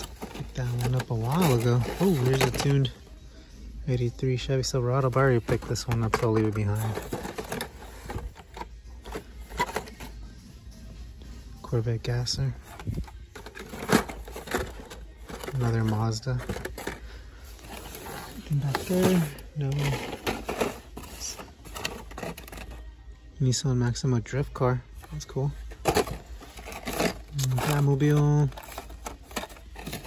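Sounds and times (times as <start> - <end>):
plastic and card clicking and rustling: 0.0 - 2.9, 5.0 - 10.1, 12.6 - 22.8, 25.0 - 30.0.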